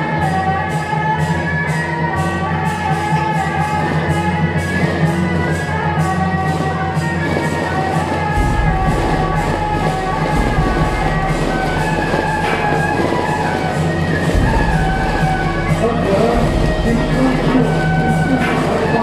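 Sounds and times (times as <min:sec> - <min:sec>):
music with held melody notes: 0:00.0 - 0:19.0
deep bass line: 0:08.4 - 0:13.3, 0:14.3 - 0:19.0.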